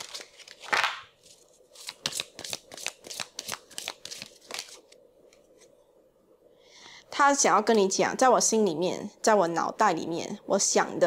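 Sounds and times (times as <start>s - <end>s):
cards shuffling clicks: 0.0s - 4.9s.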